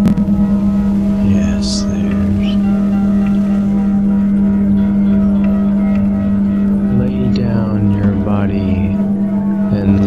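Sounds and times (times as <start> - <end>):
low ambient musical drone: 0.0 - 10.0.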